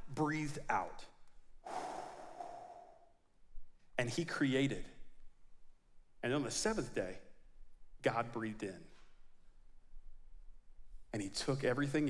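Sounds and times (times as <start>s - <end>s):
man exhaling into microphone: 1.6s - 3.1s.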